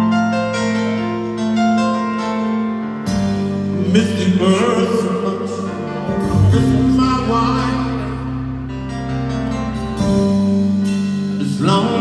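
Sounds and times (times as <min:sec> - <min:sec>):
live rock ballad: 0:00.0 - 0:12.0
man singing lead vocal: 0:03.7 - 0:08.5, 0:11.4 - 0:12.0.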